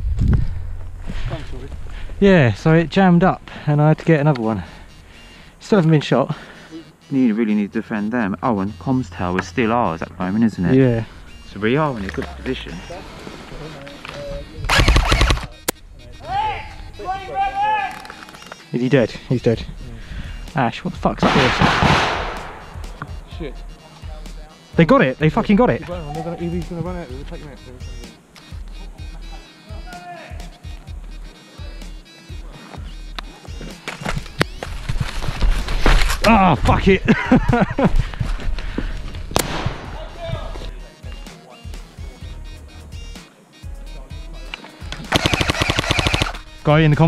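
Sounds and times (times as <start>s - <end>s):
airsoft rifle full-auto burst: 14.7s - 15.5s, 45.1s - 46.5s
airsoft guns firing: 14.7s - 15.6s, 21.2s - 23.0s, 39.3s - 40.1s, 45.0s - 46.5s.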